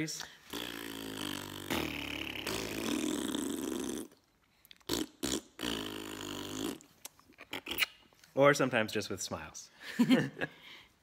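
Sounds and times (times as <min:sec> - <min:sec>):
lips blowing raspberries: 0:00.2 - 0:08.2
lip smacks: 0:00.2 - 0:08.3.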